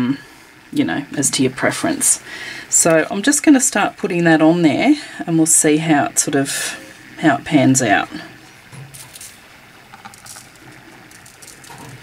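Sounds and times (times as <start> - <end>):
glitter rustling: 8.8 - 12.0.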